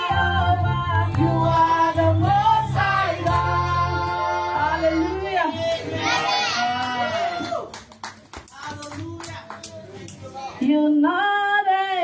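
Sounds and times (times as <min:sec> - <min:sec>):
hand claps: 0:03.2 - 0:03.8, 0:06.8 - 0:10.2.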